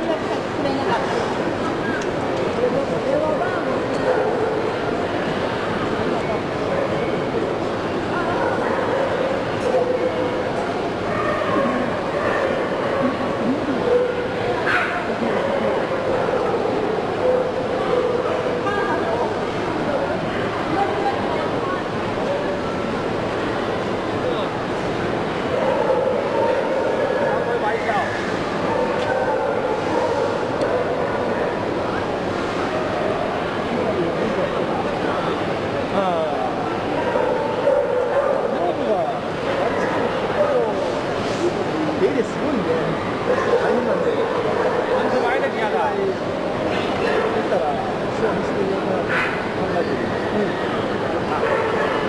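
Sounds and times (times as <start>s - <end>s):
crowd chatter: 0.0s - 52.0s.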